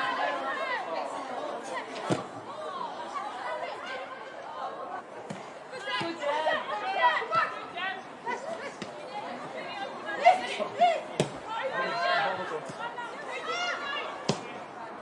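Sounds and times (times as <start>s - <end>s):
people calling and chattering: 0.0s - 15.0s.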